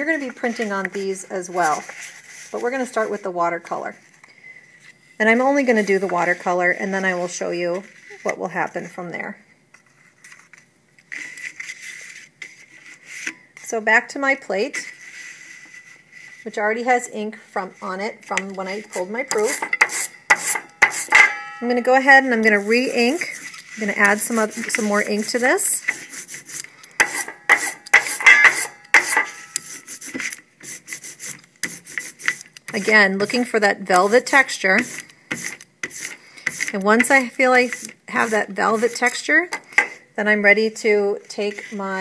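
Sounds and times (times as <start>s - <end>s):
soft rubbing on tabletop: 0.0s - 8.5s, 11.1s - 13.7s, 14.6s - 16.9s, 22.4s - 27.8s, 29.0s - 40.1s, 41.2s - 42.0s
rubber roller rasping over ink: 22.4s - 39.4s.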